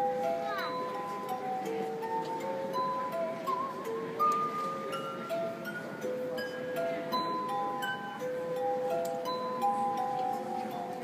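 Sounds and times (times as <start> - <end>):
glass harp tones: 0.0 - 11.0.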